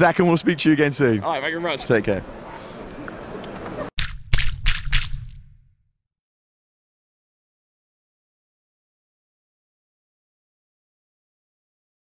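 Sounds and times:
wet splats: 4.0s - 5.5s.

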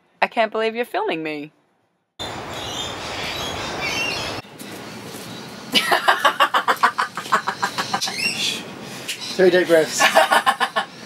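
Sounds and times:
birds chirping: 2.2s - 11.0s.

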